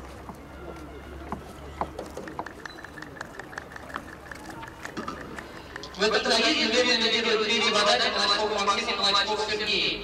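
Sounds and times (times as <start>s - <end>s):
faint voices talking: 0.0s - 8.8s.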